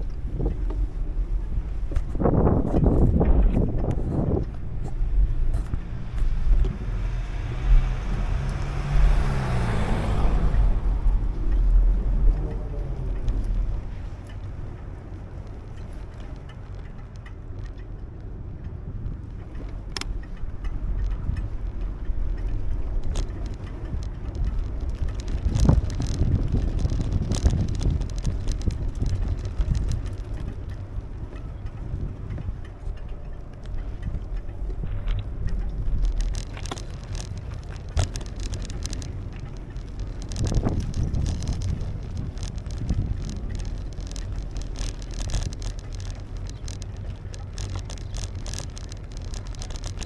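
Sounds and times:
bike knocks and rattles: 0.0s - 7.0s, 19.3s - 50.0s
bicycle tyre road noise: 0.0s - 50.0s
wind rumbling on microphone: 0.0s - 50.0s.

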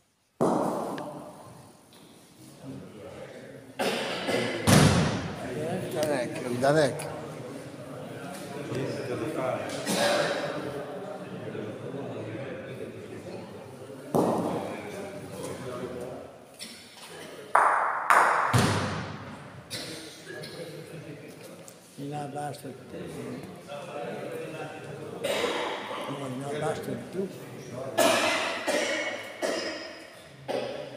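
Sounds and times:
bocce ball heavy thud: 0.4s - 1.1s.

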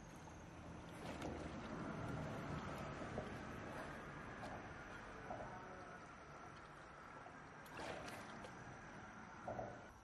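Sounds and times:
stream water sloshing: 6.1s - 10.0s.

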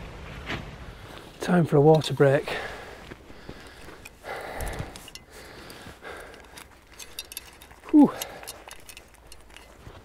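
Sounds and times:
man breathing heavily: 2.4s - 9.1s.

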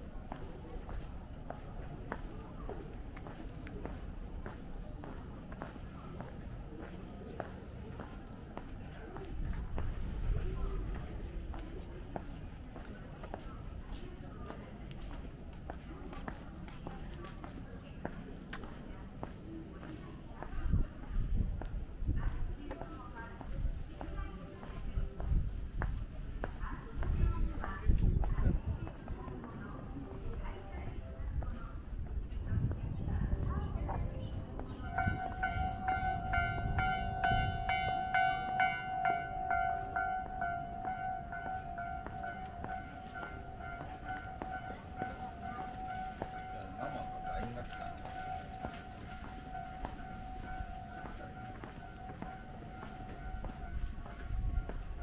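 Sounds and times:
footsteps: 0.0s - 55.0s
street noise: 0.0s - 55.0s
level crossing warning bell: 34.3s - 55.0s.

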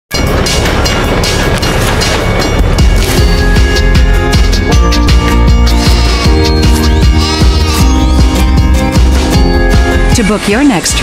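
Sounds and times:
train rushing past: 0.1s - 6.3s
electronic music: 0.1s - 11.0s.

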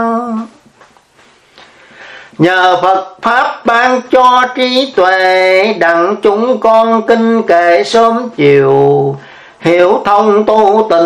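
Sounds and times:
faint hiss: 0.0s - 11.0s
person chanting devotional verse: 2.4s - 11.0s.

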